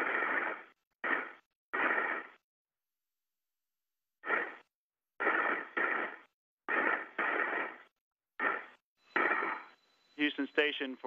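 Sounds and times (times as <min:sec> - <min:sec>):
breathing over radio: 0:00.0 - 0:02.4, 0:04.2 - 0:10.8
man speaking over radio: 0:10.2 - 0:11.0.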